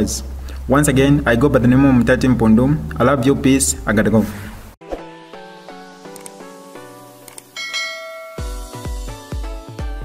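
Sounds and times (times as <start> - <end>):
bright bell chime: 7.6 - 9.1
electronic music with heavy bass: 7.8 - 10.0.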